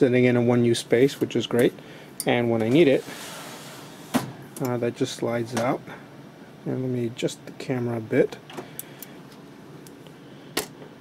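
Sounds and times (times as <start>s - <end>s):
server equipment humming: 0.0s - 11.0s.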